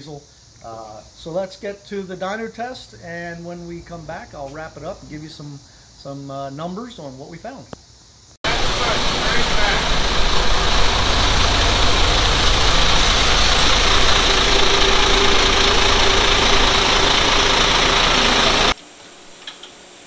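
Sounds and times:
high hiss: 4.5s - 20.0s
diesel engine running loudly: 8.4s - 18.8s.

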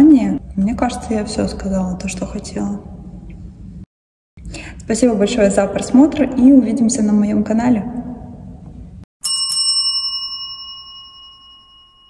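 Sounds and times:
bell-like chime ringing: 9.2s - 12.0s.

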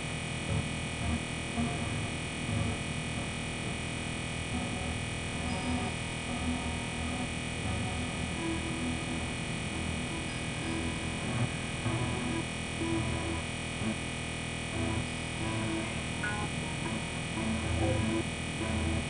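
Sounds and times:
synthesizer drone music: 0.0s - 19.0s.

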